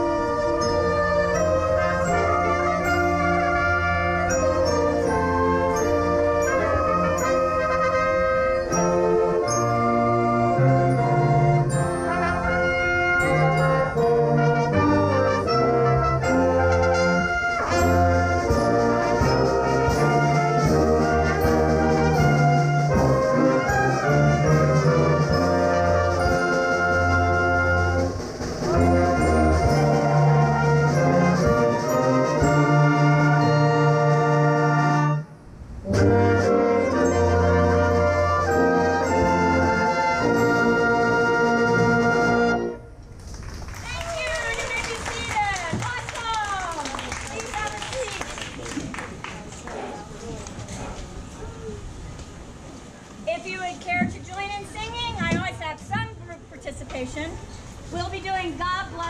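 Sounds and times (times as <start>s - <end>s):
orchestra playing brass chords: 0.0s - 43.0s.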